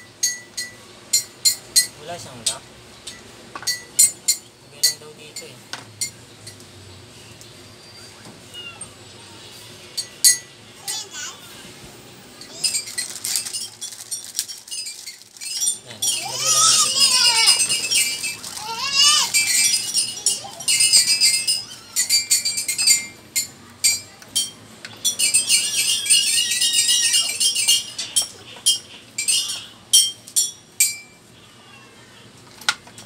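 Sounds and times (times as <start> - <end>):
chair parts clicking and clinking: 12.4 - 31.2
plastic packaging crinkling: 12.6 - 19.2.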